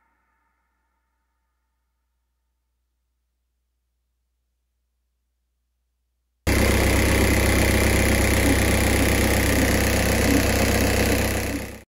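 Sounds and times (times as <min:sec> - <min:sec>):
car engine idling: 0:06.5 - 0:11.9.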